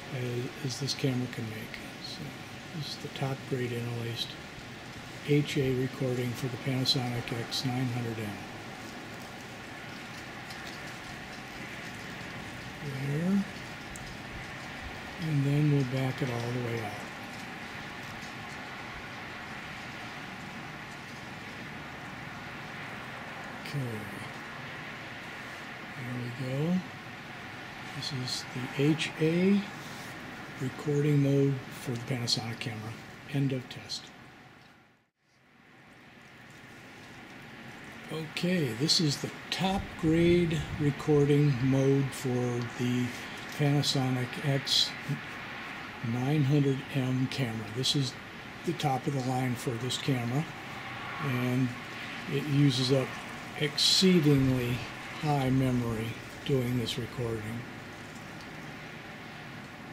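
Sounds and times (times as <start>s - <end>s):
man's voice: 0.0s - 4.4s, 5.3s - 8.4s, 15.2s - 17.1s, 23.7s - 24.3s, 28.0s - 29.7s, 30.6s - 34.1s, 38.1s - 45.2s, 46.0s - 50.5s, 51.2s - 57.6s
distant outdoor ambience hiss: 0.0s - 59.9s.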